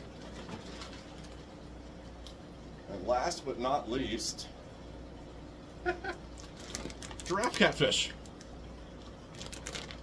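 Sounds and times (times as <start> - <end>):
aquarium equipment hum: 0.0 - 10.0
plastic bag crinkling: 6.4 - 10.0.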